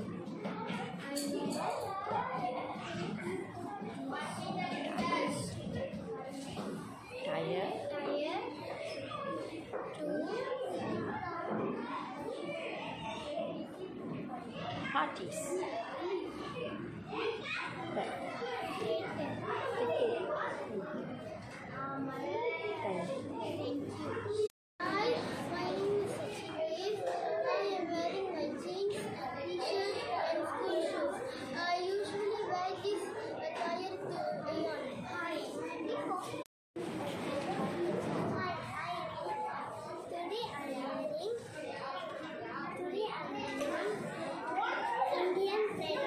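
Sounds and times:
children talking: 0.0 - 46.0.

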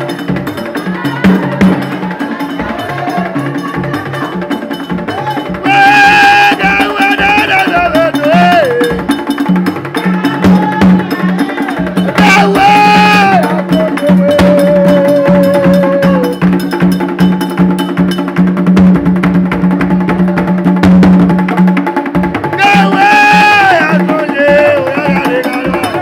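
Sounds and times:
ceremonial percussion rhythm: 0.0 - 26.0
high voice crying out: 5.1 - 9.1, 10.0 - 16.5.

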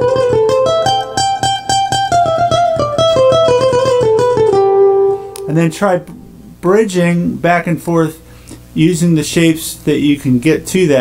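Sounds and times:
acoustic guitar lead line: 0.0 - 8.7.

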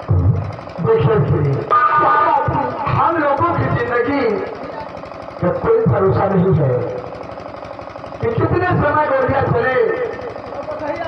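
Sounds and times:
man declaiming through loudspeakers: 0.2 - 4.4, 5.4 - 6.9, 8.2 - 10.2.

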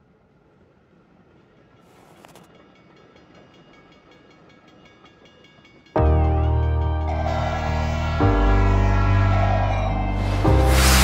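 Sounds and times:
train rumbling on tracks: 0.0 - 11.0.

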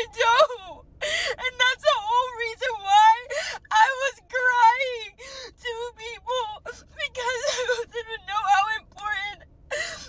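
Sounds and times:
woman sobbing and wailing: 0.0 - 10.0.

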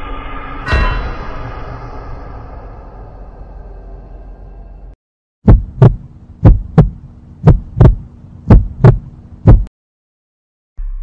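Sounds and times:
heartbeat thumps: 5.4 - 9.7
faint steady hum: 5.5 - 9.7.

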